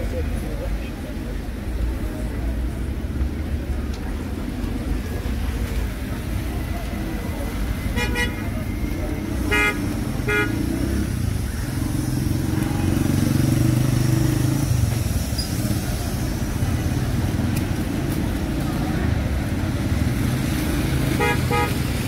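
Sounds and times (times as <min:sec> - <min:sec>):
low rumble of vehicle engines: 0:00.0 - 0:22.0
vehicle engine approaching: 0:01.7 - 0:22.0
car horn toots: 0:09.5 - 0:10.6, 0:21.2 - 0:21.8.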